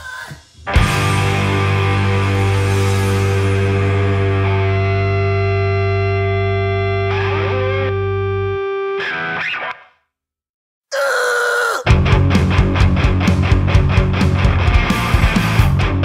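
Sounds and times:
punk song: 0.7 - 8.4, 11.9 - 16.0
distorted electric guitar chord: 0.8 - 9.4.

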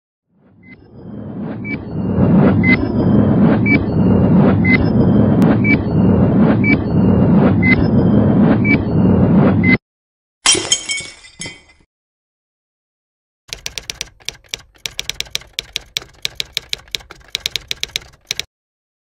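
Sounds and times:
low rumble: 0.4 - 9.8
glass shattering crash: 10.4 - 11.8.

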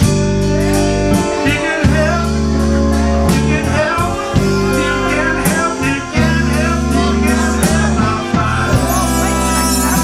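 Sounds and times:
live band playing blues: 0.0 - 10.0
trumpet: 0.0 - 10.0
man singing: 0.6 - 10.0.

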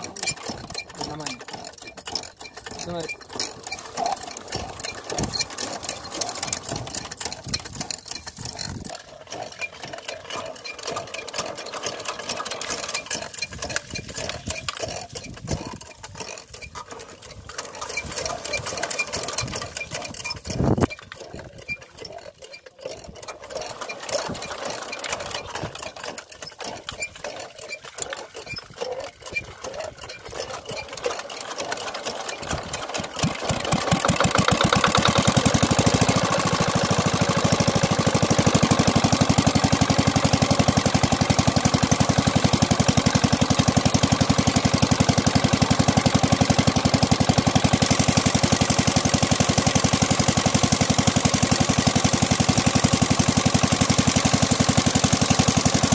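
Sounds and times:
small diesel pump engine running: 0.0 - 55.9.

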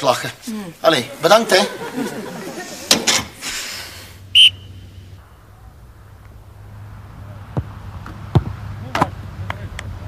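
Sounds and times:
sports whistle blast: 4.3 - 5.0.

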